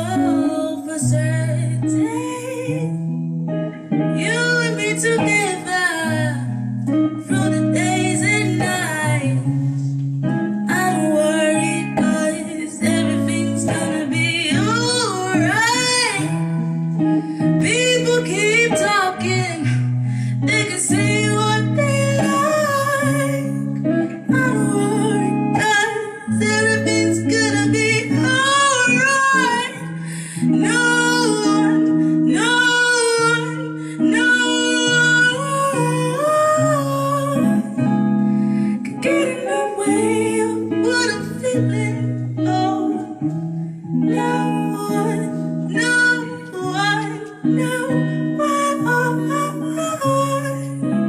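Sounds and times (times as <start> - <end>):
electric guitars sustained chords: 0.0 - 51.0
woman singing: 0.0 - 51.0.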